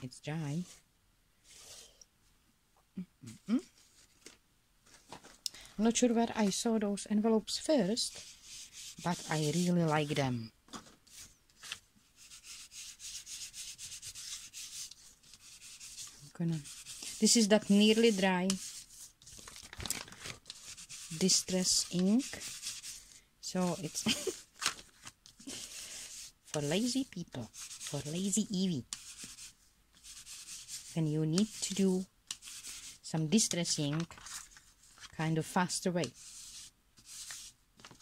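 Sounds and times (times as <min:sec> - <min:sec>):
ink pad rubbing on paper: 0:07.8 - 0:10.2, 0:12.2 - 0:19.2, 0:20.5 - 0:24.4, 0:25.4 - 0:34.0, 0:36.0 - 0:37.5.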